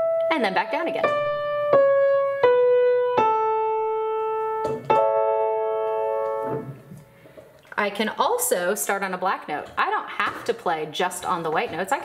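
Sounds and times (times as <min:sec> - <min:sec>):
upright piano notes and chord: 0:00.0 - 0:07.2.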